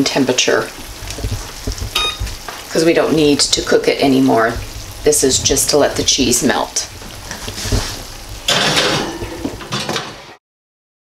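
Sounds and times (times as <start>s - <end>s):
clatter of cookware and dishes: 8.5s - 10.4s.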